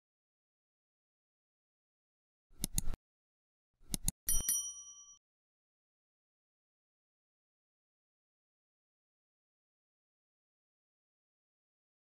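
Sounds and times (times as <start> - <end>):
quick clicks: 2.6 - 3.0
bright bell ding: 4.3 - 5.2.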